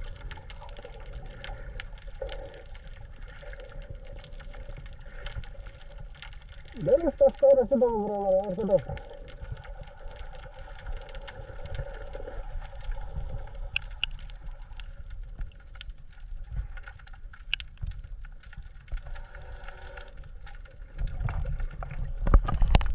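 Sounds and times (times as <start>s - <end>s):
underwater rumble of moving water: 0.0s - 22.9s
small clicks: 13.6s - 15.9s.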